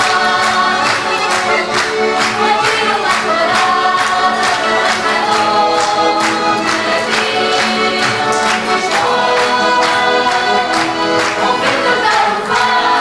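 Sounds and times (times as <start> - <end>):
accordion: 0.0 - 13.0
women singing in unison: 0.0 - 13.0.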